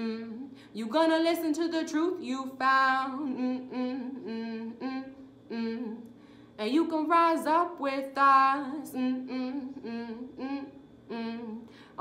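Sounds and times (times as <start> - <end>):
woman humming: 0.0 - 0.6, 3.0 - 6.2, 8.4 - 11.8.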